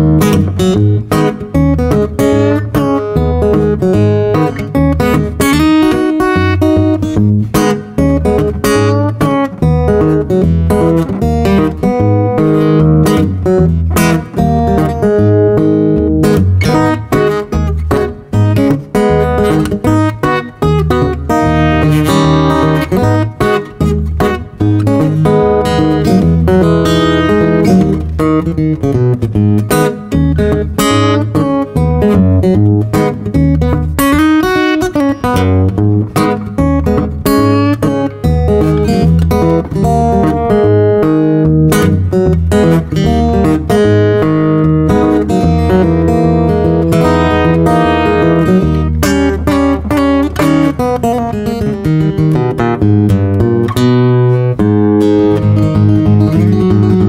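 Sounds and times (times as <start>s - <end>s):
fingerstyle acoustic guitar: 0.0s - 57.0s.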